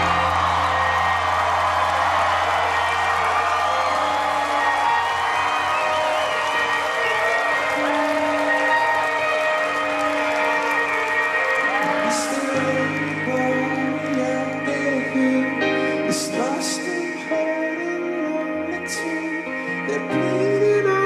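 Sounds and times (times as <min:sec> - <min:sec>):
rock band sustained chords: 0:00.0 - 0:19.0
crowd cheering: 0:00.0 - 0:20.9.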